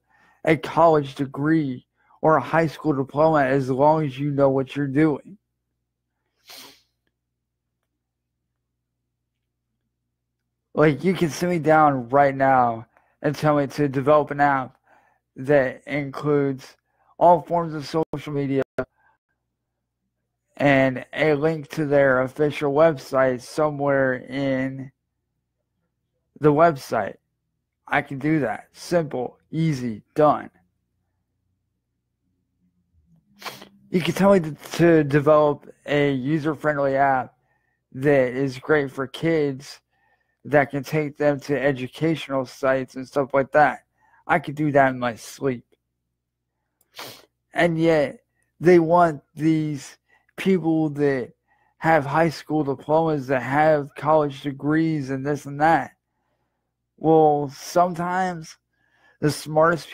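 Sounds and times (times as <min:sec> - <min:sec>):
man speaking: 0:00.4 - 0:05.4, 0:10.8 - 0:14.8, 0:15.4 - 0:18.9, 0:20.6 - 0:24.9, 0:26.4 - 0:27.2, 0:27.9 - 0:30.5, 0:33.4 - 0:37.3, 0:38.0 - 0:39.8, 0:40.5 - 0:45.6, 0:47.0 - 0:56.0, 0:57.0 - 0:58.6, 0:59.2 - 0:59.9
person sharp breath: 0:06.3 - 0:07.0, 0:14.8 - 0:15.2, 0:33.2 - 0:33.9, 0:39.9 - 0:40.4, 0:46.9 - 0:47.3, 0:58.7 - 0:59.2
man's sharp intake of breath: 0:06.4 - 0:07.0, 0:33.4 - 0:33.8, 0:46.9 - 0:47.3.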